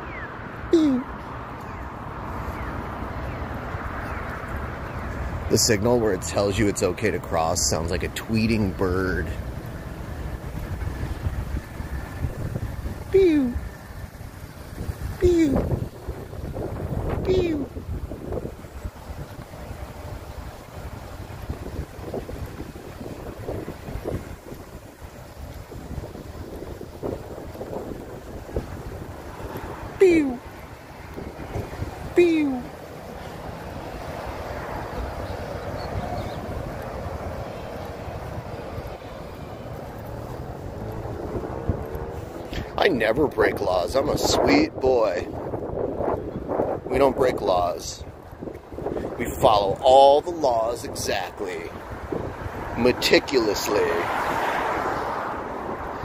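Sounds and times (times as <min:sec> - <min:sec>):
crossing signal chirping: 0:00.0 - 0:00.7
wind rumbling on microphone: 0:00.0 - 0:56.0.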